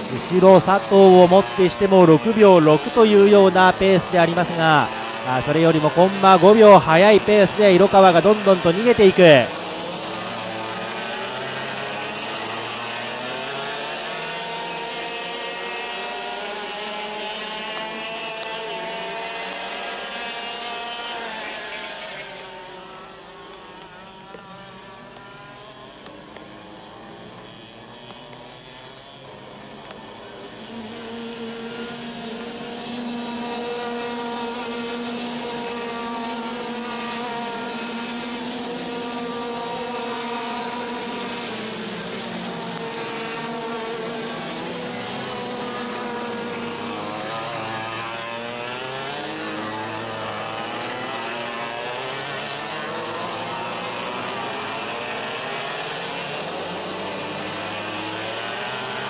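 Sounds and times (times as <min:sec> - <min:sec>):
kart engines racing: 0:00.0 - 0:59.0.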